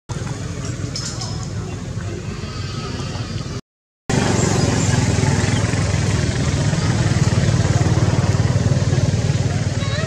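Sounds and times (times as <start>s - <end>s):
engine idling: 0.1s - 10.0s.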